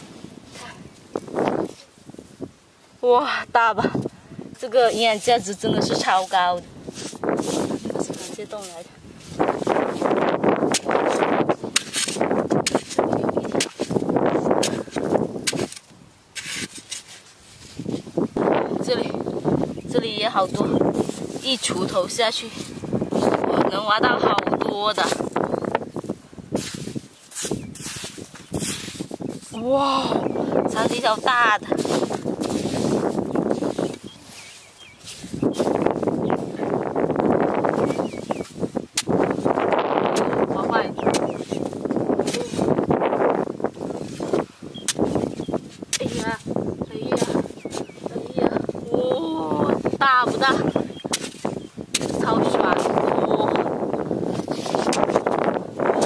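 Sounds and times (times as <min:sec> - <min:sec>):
soil clods crumbling and scraping: 0:04.6 - 0:18.3, 0:26.0 - 0:48.6
hands crumbling damp mud: 0:06.9 - 0:18.2, 0:30.7 - 0:36.5
hoe striking soil: 0:09.5 - 0:17.3, 0:38.9 - 0:40.4, 0:41.0 - 0:42.8, 0:44.1 - 0:46.4, 0:50.2 - 0:53.0, 0:54.5 - 0:56.0.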